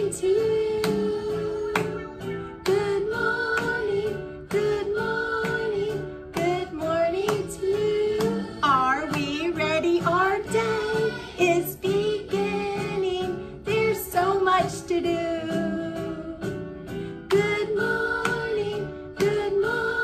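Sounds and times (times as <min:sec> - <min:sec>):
children's song with singing voices: 0:00.0 - 0:20.0.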